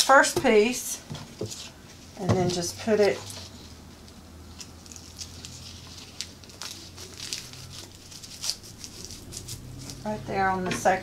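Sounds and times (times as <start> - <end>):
hook-and-loop tape crinkling: 2.8 - 10.1.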